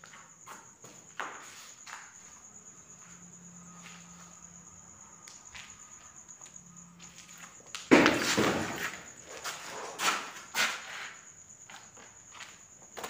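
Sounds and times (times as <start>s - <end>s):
crickets trilling: 0.0s - 13.0s
footsteps: 5.3s - 13.0s.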